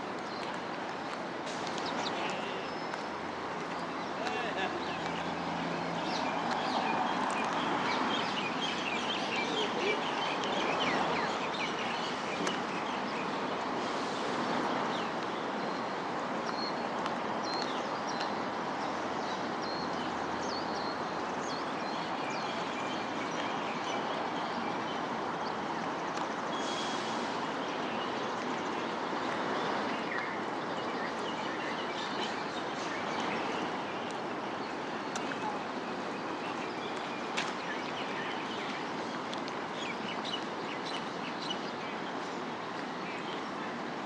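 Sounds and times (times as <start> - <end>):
city noise hum: 0.0 - 44.0
distant traffic: 0.0 - 44.0
birds chirping: 0.1 - 44.0.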